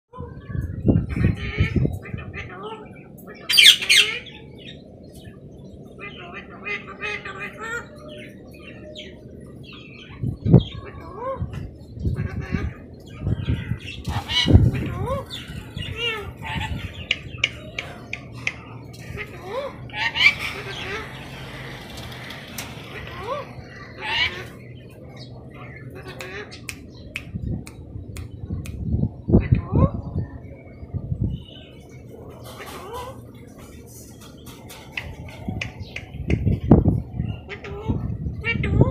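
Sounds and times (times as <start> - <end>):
parrot chattering and squawking: 1.3 - 4.4, 13.8 - 24.7, 37.3 - 38.9
parrot squawk: 3.5 - 4.3, 19.2 - 21.8, 22.8 - 24.6.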